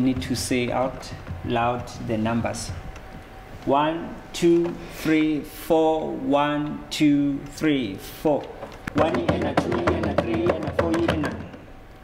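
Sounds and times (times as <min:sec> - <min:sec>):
hands tapping on wooden table: 0:00.0 - 0:03.7, 0:08.6 - 0:11.7.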